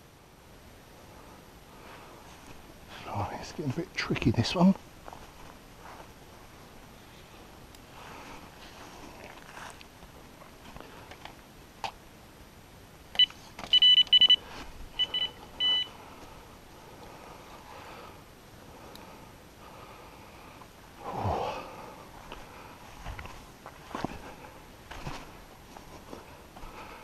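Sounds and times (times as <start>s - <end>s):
electronic bite alarm beeping: 13.2s - 14.4s, 15.0s - 15.9s.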